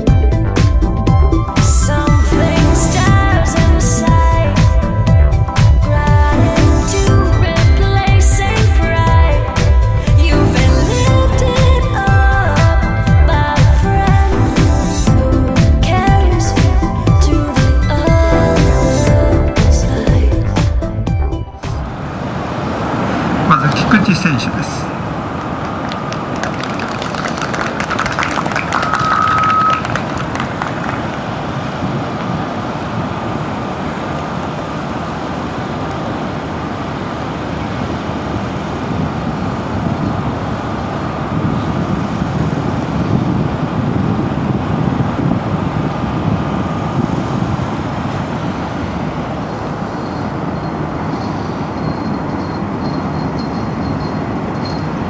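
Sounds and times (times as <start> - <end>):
outdoor low rumble: 0.0 - 54.8
brief high tone: 28.7 - 29.9.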